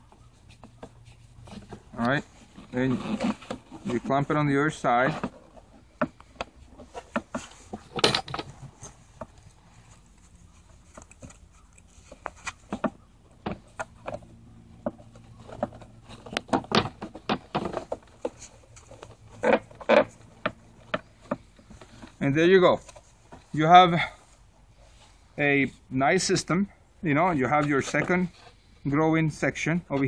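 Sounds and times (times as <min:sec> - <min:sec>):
gloved hands handling plastic pipe: 0:00.0 - 0:25.4.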